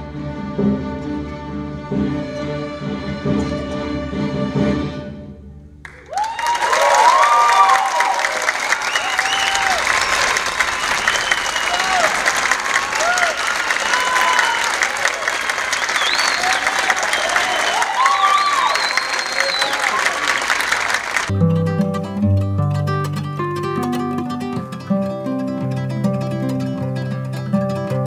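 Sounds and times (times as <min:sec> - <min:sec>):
audience applause: 0:05.8 - 0:21.3
whoops and cheers: 0:05.9 - 0:20.7.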